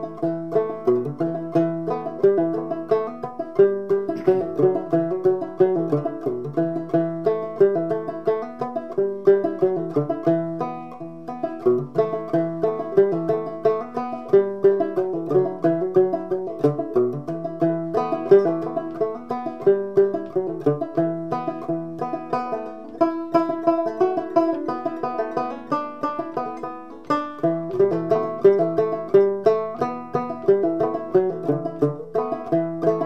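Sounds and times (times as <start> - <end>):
banjo plucking: 0.0 - 33.0.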